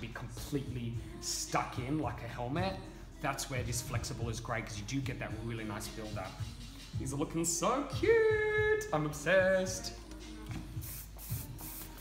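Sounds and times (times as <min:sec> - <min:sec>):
aerosol hairspray hissing: 0:10.1 - 0:12.0.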